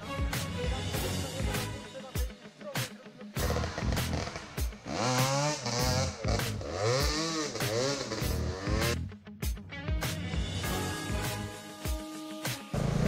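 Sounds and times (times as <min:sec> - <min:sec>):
background music with steady beat: 0:00.0 - 0:13.0
dirt bike engine revving: 0:03.4 - 0:09.1, 0:12.7 - 0:13.0.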